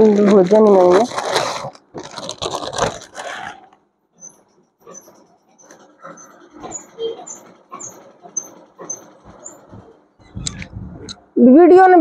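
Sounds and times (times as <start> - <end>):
cloth fabric rustling: 0.0 - 3.7.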